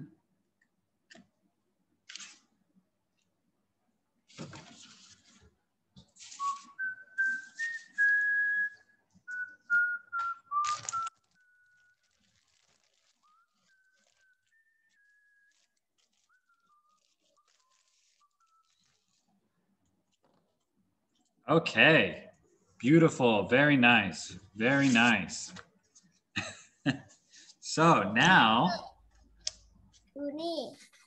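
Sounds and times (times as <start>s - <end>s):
person whistling a tune: 6.4s - 11.9s.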